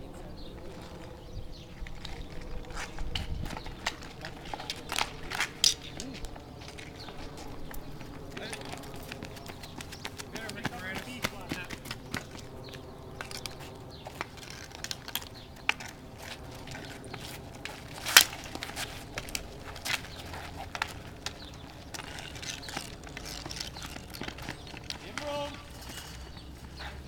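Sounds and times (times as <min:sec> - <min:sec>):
hockey sticks clacking on ball: 0:02.4 - 0:12.4, 0:13.2 - 0:27.0
players' voices and shouts: 0:25.0 - 0:25.7.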